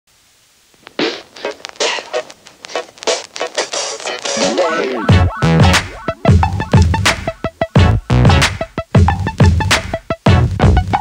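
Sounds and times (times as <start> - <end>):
faint hiss: 0.1 - 5.1
intro music: 1.0 - 11.0.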